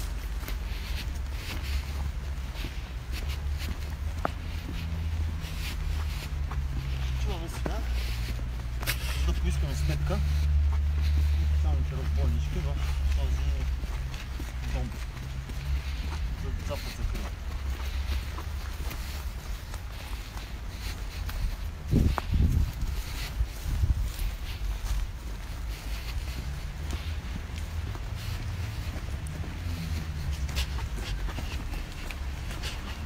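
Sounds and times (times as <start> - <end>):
footsteps on dirt path: 0.0 - 33.0
steady low rumble: 0.0 - 33.0
wind rumble: 17.0 - 33.0.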